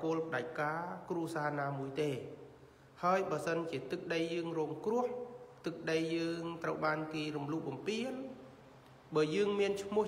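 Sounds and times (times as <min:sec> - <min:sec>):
man speaking in intoned voice: 0:00.0 - 0:08.5, 0:09.1 - 0:10.0.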